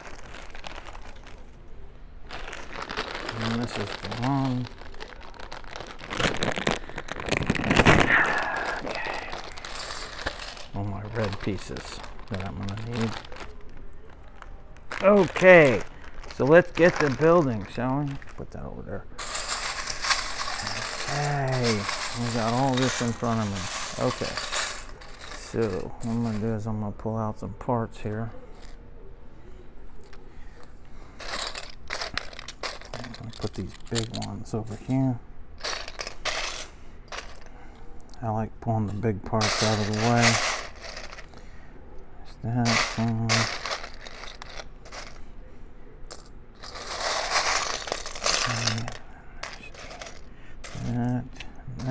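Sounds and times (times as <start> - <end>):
plastic bricks clattering in bowl: 0.0 - 1.5, 2.3 - 18.4, 19.2 - 26.6, 31.2 - 37.5, 38.9 - 41.4, 42.5 - 45.2, 46.1 - 51.9
plastic bag crinkling: 0.0 - 26.7, 30.0 - 37.6, 38.8 - 41.4, 42.5 - 45.3, 46.1 - 51.9.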